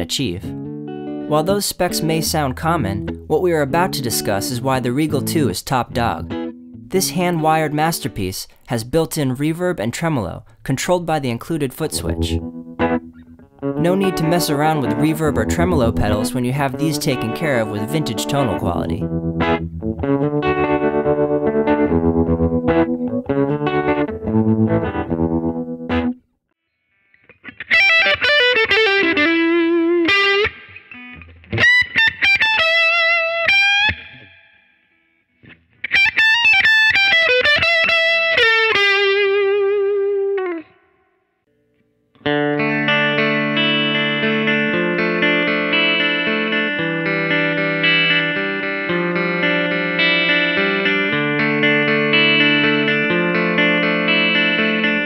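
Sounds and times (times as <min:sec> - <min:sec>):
overdriven electric guitar: 0:00.0 - 0:08.7, 0:11.8 - 0:26.2, 0:26.9 - 0:41.1, 0:42.1 - 0:55.0.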